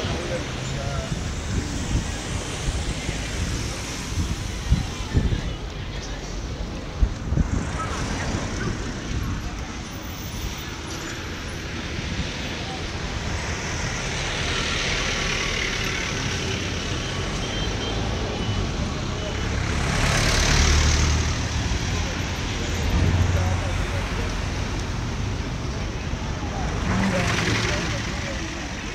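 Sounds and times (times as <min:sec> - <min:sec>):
cars passing: 0:00.0 - 0:28.9
truck passing: 0:13.1 - 0:24.8, 0:26.4 - 0:28.9.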